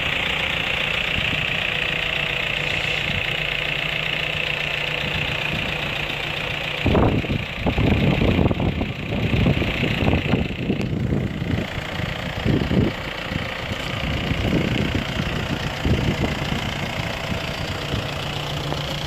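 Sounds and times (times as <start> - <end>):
engine idling: 0.0 - 19.0
gusty rumble: 6.7 - 19.0.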